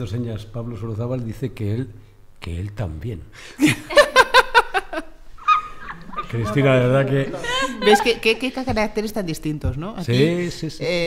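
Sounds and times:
person laughing: 0:07.3 - 0:08.3.

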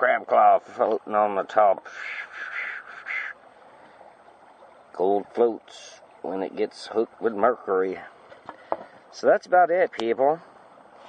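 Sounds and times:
faint background noise: 0:00.0 - 0:11.0
raspy animal call: 0:01.8 - 0:03.5.

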